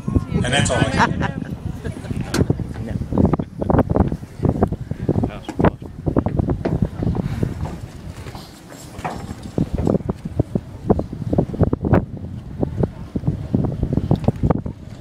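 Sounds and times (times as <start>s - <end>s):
wind buffeting microphone: 0.0s - 15.0s.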